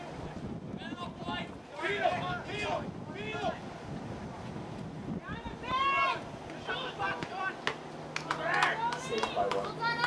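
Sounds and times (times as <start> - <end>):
voices shouting: 0.8 - 3.6, 5.2 - 10.0.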